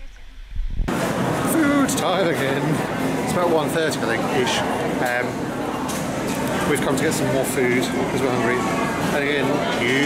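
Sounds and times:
crowd chatter: 0.9s - 10.0s.

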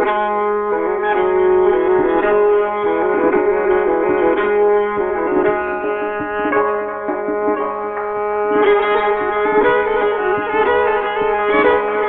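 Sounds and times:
hammered dulcimer notes: 0.0s - 12.0s.

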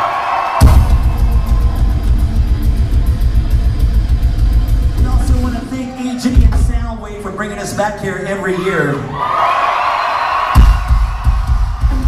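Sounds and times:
rock band playing: 0.6s - 7.4s, 10.5s - 12.0s.

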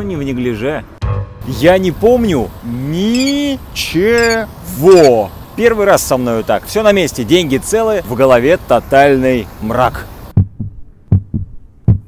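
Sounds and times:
outdoor background: 0.0s - 12.0s
heartbeat thuds: 10.4s - 12.0s.

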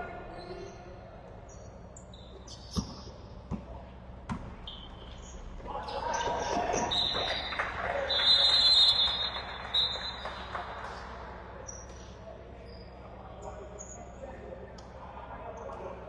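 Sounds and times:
referee's whistle blast: 6.9s - 10.5s.

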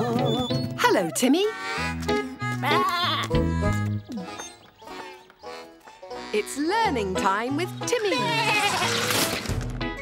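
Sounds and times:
cheerful children's theme music: 0.0s - 10.0s
cartoon lamb bleating: 2.6s - 3.6s, 8.1s - 9.0s.

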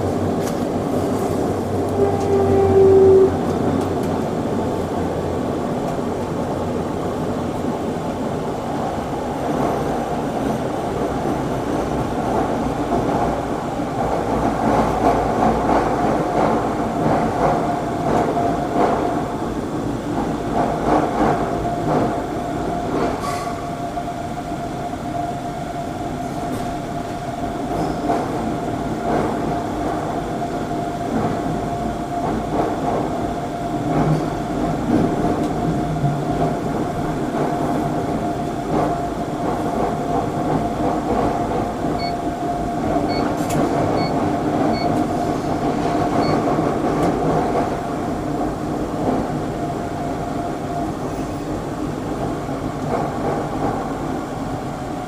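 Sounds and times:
train wheels rumbling on rails: 0.0s - 55.0s.

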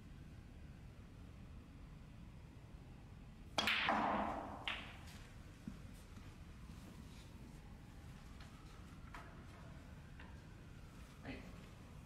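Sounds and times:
ball dropping into pocket: 3.6s - 5.1s
cue striking ball: 3.6s - 5.1s.

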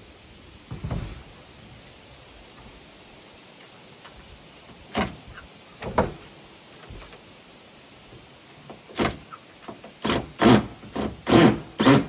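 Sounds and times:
cordless drill bursts: 10.0s - 12.0s.

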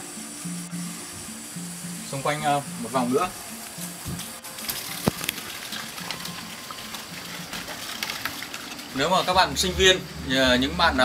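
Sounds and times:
flowing water and waterfall: 0.0s - 11.0s
footsteps on wooden floor: 3.7s - 4.4s.

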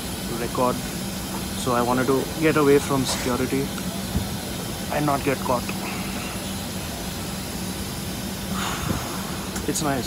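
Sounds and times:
airliner cabin hiss: 0.0s - 10.0s.

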